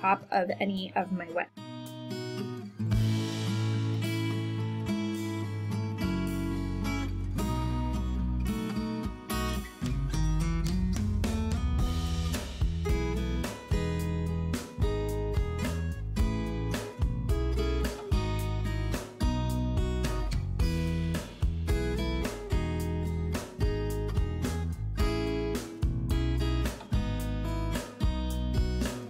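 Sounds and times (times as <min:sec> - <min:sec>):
acoustic guitar music with beat: 0:00.0 - 0:29.0.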